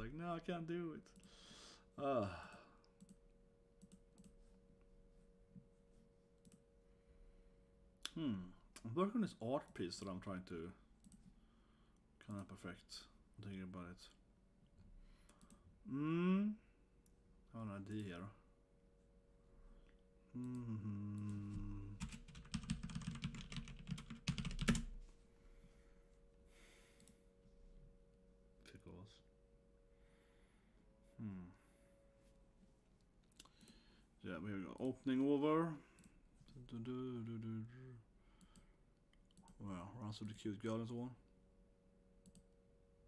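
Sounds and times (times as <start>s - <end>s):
faint steady hum: 0.0s - 43.0s
man humming: 8.0s - 8.6s, 15.8s - 16.7s, 20.3s - 22.0s, 31.1s - 31.7s
typing on computer keyboard: 21.8s - 24.9s.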